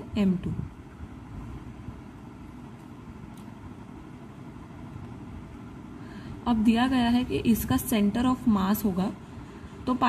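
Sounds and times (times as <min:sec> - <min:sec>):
faint low background rumble: 0:00.0 - 0:10.0.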